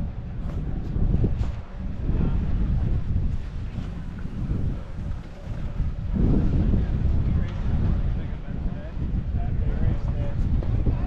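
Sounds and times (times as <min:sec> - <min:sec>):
wind buffeting microphone: 0:00.0 - 0:11.0
skis sliding on packed snow: 0:03.2 - 0:06.6.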